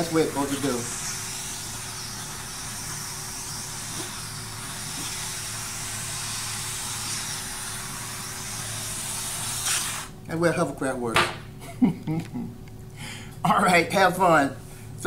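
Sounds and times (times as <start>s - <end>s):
air hissing out of balloon: 0.0s - 10.2s.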